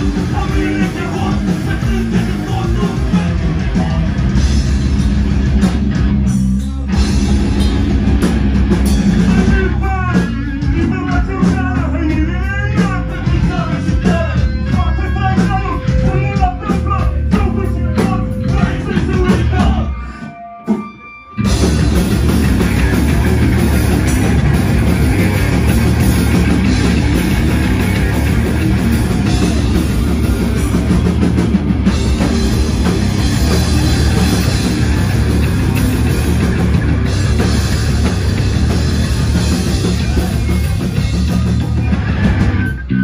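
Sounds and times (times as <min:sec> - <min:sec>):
person singing: 0:00.0 - 0:04.1
distorted guitars: 0:00.0 - 0:43.0
live rock band playing: 0:00.0 - 0:43.0.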